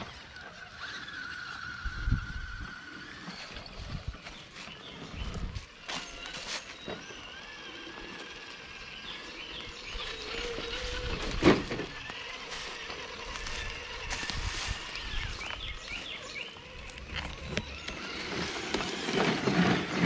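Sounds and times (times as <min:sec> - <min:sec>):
electric motor and gear whine: 0:00.0 - 0:20.0.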